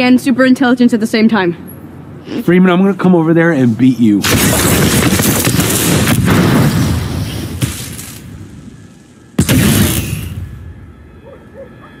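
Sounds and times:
electrical blast rumble: 4.2 - 11.0
sparks hissing: 4.3 - 10.5.

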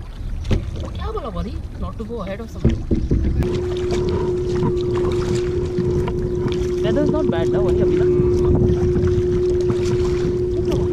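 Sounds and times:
paddle splashing water: 0.0 - 10.9
wind buffeting microphone: 0.0 - 10.9
steady hum: 3.2 - 10.9.

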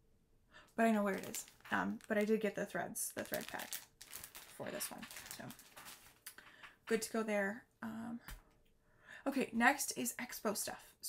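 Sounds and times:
person speaking: 0.8 - 6.0
plastic bag crinkling: 0.8 - 6.4.

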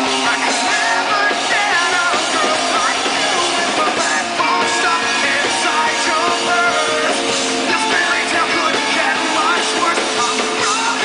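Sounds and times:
electric guitars: 0.0 - 11.0
live rock band playing: 0.0 - 11.0
male singer: 0.0 - 11.0.

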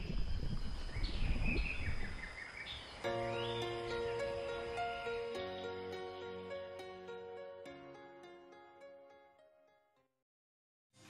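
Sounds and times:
birds chirping: 0.0 - 7.7.

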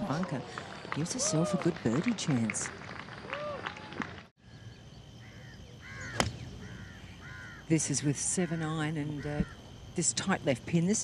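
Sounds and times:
faint outdoor background: 0.0 - 11.0
crow-like bird cawing: 5.2 - 7.7.

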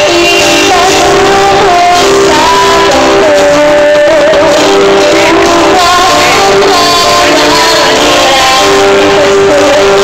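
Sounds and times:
live band music: 0.0 - 10.0
woman singing a ballad: 0.0 - 10.0.

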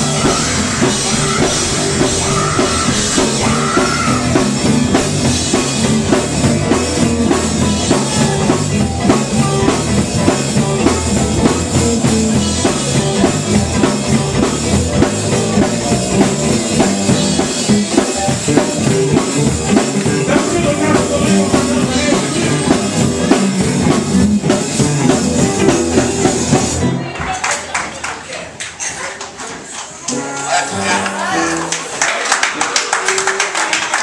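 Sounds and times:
live gospel band playing: 0.0 - 27.8, 30.0 - 34.0
man singing into a microphone: 20.1 - 22.8.

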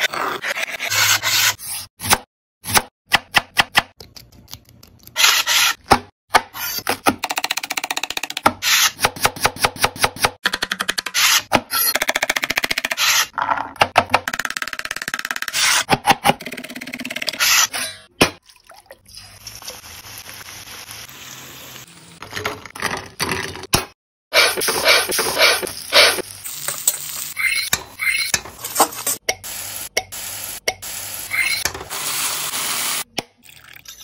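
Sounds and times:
vegetables sizzling in hot oil: 19.2 - 22.0, 25.8 - 27.3.

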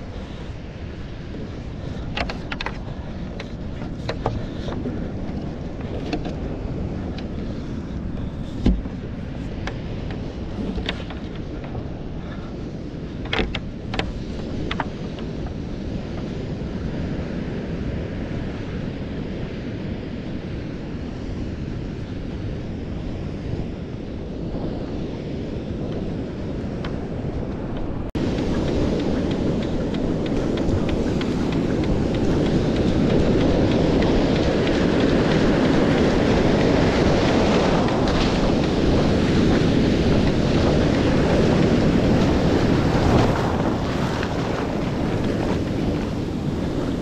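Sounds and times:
ocean surf: 0.0 - 47.0
waves breaking close by: 0.0 - 47.0
wind on microphone: 0.0 - 47.0.

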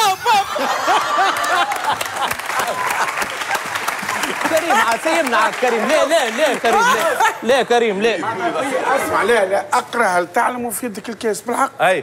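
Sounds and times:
studio audience applauding: 0.8 - 7.4.

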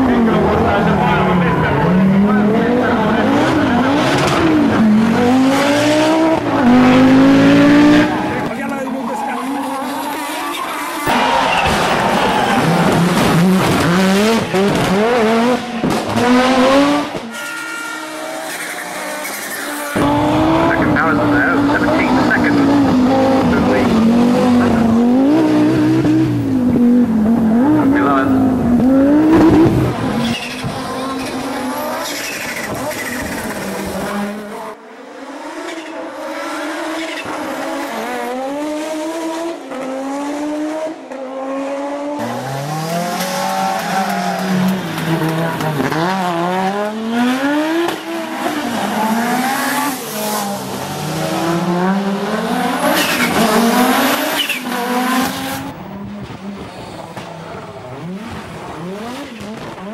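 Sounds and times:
rally car engines revving: 0.0 - 59.9.

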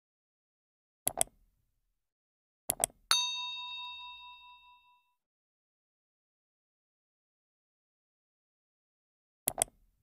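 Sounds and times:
bright bell ding: 3.1 - 5.1.

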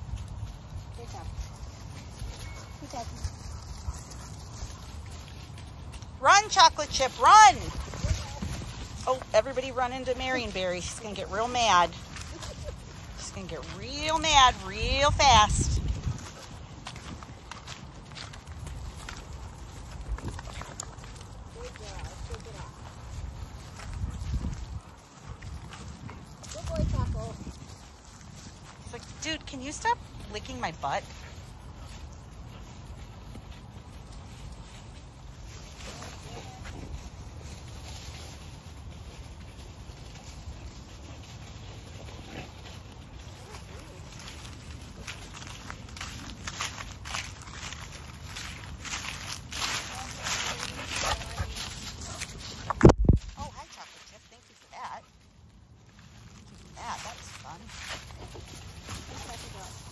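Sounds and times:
paws scuffling on dry leaves: 0.0 - 59.9.

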